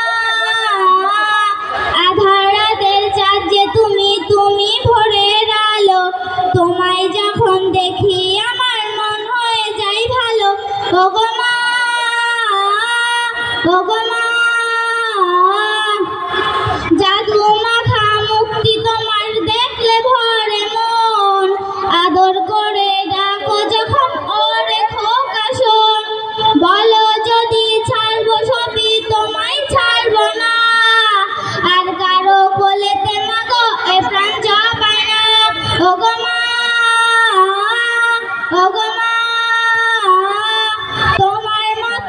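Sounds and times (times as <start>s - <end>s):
girl singing through loudspeakers: 0.0s - 42.0s.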